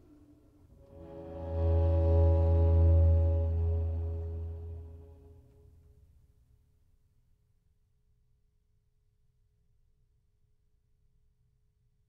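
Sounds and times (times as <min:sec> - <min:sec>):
low cello note: 0:00.8 - 0:05.7
string quartet sustained chord: 0:00.8 - 0:05.8.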